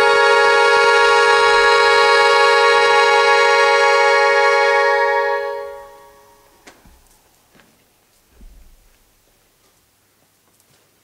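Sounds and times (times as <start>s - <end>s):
accordion chord: 0.0s - 6.6s.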